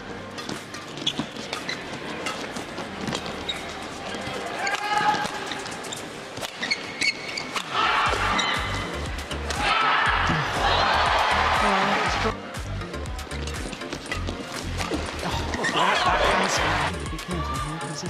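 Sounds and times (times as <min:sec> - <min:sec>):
shoes squeaking on court: 0:00.0 - 0:09.6, 0:13.2 - 0:16.8
music: 0:00.0 - 0:18.0.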